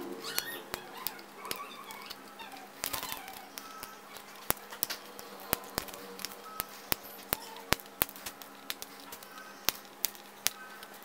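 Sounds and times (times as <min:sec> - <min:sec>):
flush cutters snipping wire: 0:00.0 - 0:11.0.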